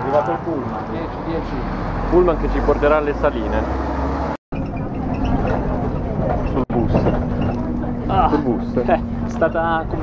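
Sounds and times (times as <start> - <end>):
bus engine and road noise: 0.0 - 10.0
low traffic rumble: 0.0 - 10.0.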